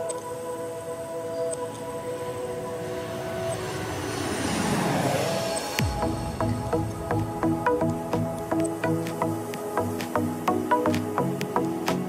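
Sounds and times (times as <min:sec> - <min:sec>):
background music sustained tones: 0:00.0 - 0:12.0.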